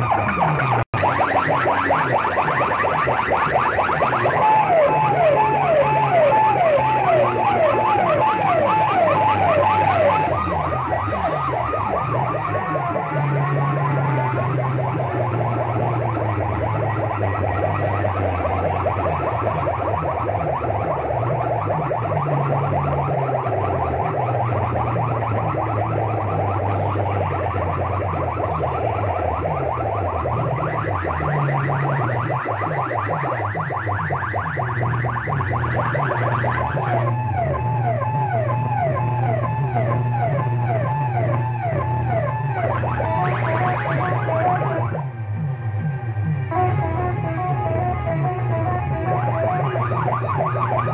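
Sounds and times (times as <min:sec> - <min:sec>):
heavy bass: 0:00.0 - 0:50.9
loud electronic music: 0:00.0 - 0:50.9
siren-like warbling effects: 0:00.0 - 0:50.9.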